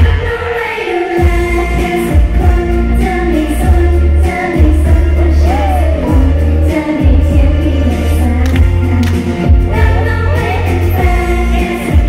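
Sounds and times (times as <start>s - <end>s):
women singing: 0.0s - 12.0s
backing track with pulsing bass: 1.2s - 12.0s.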